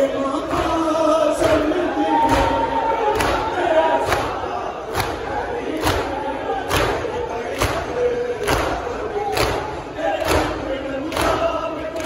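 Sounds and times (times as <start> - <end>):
many men's voices: 0.0 - 12.0.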